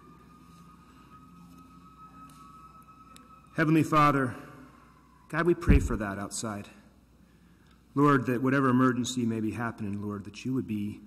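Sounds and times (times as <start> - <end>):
distant emergency siren: 0.0 - 6.6.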